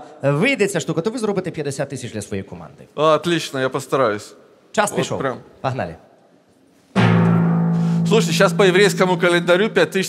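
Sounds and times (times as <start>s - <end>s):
low drum hit: 7.0s - 9.7s
held low musical note: 7.0s - 9.8s.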